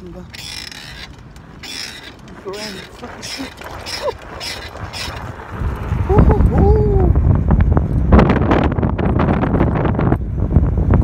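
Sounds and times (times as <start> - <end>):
bike mechanical clicking: 0.0 - 6.0
wind rumble on microphone: 1.4 - 11.0.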